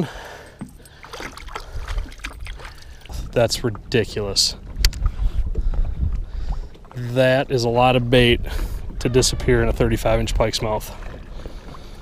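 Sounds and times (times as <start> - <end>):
water lapping against boat: 0.0 - 12.0
wind rumble on microphone: 1.5 - 12.0.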